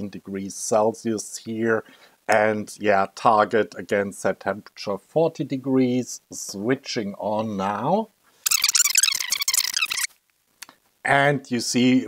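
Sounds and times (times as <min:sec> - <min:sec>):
fast-forwarded audio chattering: 0:08.5 - 0:10.1.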